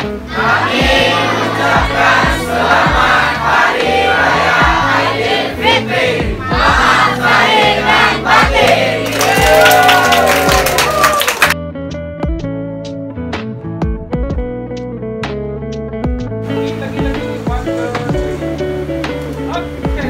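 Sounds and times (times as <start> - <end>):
background music with bass line: 0.0 - 20.0
crowd shouting and cheering: 0.1 - 11.6
crowd clapping: 8.4 - 11.6.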